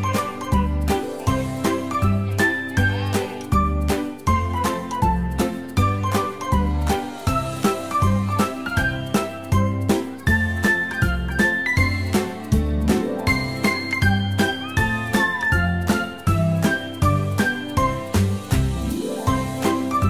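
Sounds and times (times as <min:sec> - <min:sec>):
upbeat music with bell-like melody: 0:00.0 - 0:20.0.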